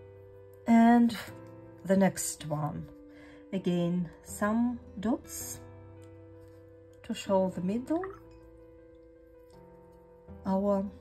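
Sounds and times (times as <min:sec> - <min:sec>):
soft music of held notes: 0:00.0 - 0:11.0.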